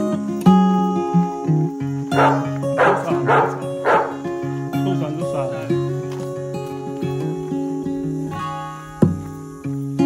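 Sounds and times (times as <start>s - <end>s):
acoustic guitar music: 0.0s - 10.0s
dog barking: 2.1s - 4.2s.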